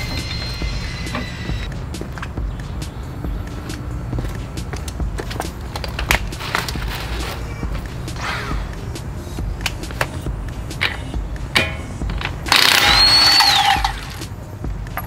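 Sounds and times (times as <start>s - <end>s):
impact wrench whine: 0.0s - 1.7s, 11.6s - 14.3s
tools clicking and knocking: 9.6s - 15.0s.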